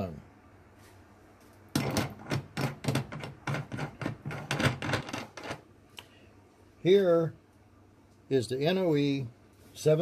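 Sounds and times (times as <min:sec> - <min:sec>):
metal threads grating: 0:01.7 - 0:05.7.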